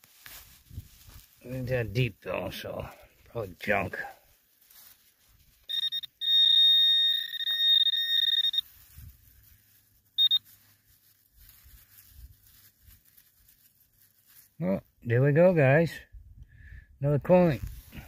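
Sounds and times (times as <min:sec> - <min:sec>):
short electronic beep: 0:05.7 - 0:08.6, 0:10.2 - 0:10.4
metal detector high tone: 0:05.7 - 0:08.7, 0:10.2 - 0:10.5.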